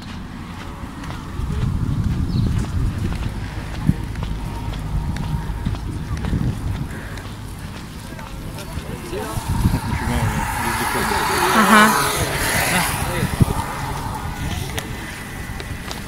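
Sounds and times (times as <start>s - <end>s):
background voices of people: 0.0s - 16.0s
skateboard rolling on tarmac: 0.0s - 16.0s.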